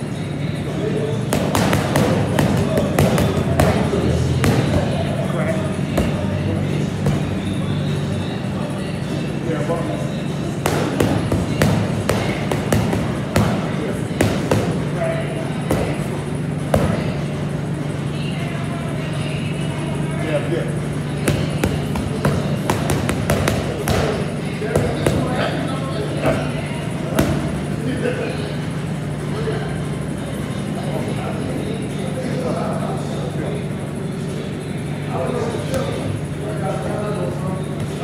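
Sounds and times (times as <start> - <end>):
faint voices: 0.0 - 38.0
low room hum: 0.0 - 38.0.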